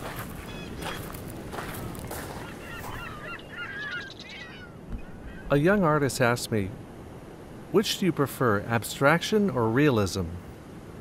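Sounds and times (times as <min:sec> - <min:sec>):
gulls calling: 0:00.0 - 0:06.9.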